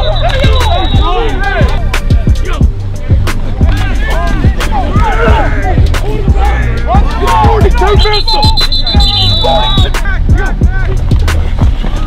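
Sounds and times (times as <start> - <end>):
beat with deep falling bass: 0.0 - 12.0.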